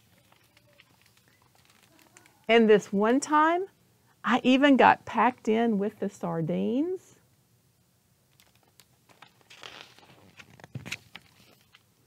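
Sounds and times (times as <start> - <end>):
page turning rustle: 0.0 - 2.3, 8.3 - 11.9.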